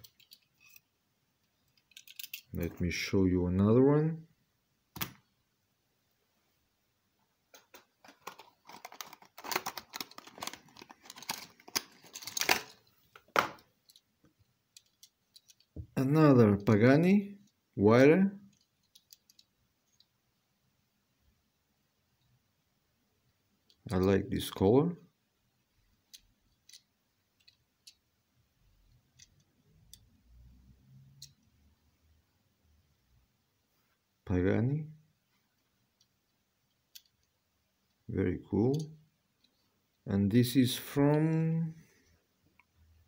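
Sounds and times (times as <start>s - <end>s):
plastic packaging crinkling: 8.0s - 12.8s.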